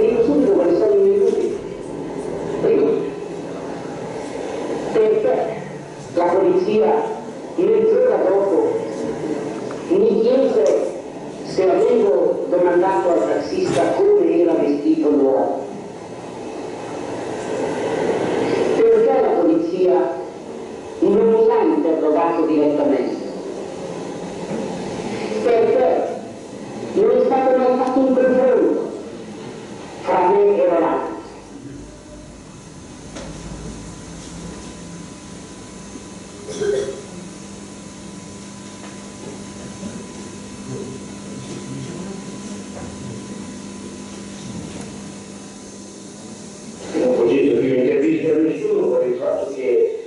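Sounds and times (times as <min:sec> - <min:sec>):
steady background noise: 0:00.0 - 0:50.0.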